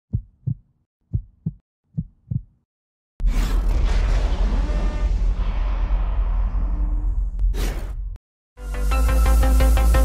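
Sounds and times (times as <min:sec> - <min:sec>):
heartbeat thumps: 0:00.1 - 0:02.6.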